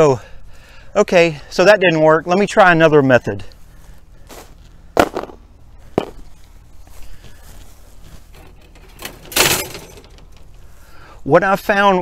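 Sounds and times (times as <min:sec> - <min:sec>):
scraping rustle: 0:06.2 - 0:11.0.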